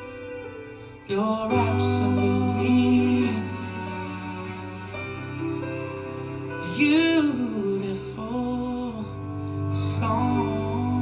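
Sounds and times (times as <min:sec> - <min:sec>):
person singing long notes: 0:00.0 - 0:11.0
soft accompaniment: 0:00.0 - 0:11.0.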